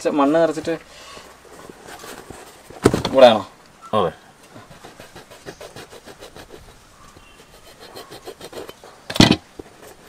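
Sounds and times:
blade cutting rubber tyre: 4.7 - 10.0.

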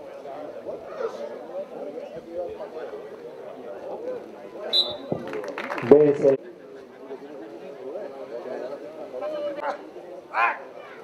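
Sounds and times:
people talking in background: 0.0 - 11.0.

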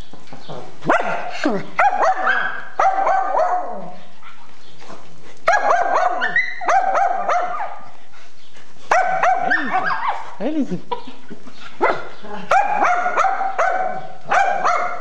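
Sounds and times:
small dog barking and yipping: 0.8 - 3.9, 5.5 - 7.8, 8.9 - 10.4, 11.8 - 15.0.

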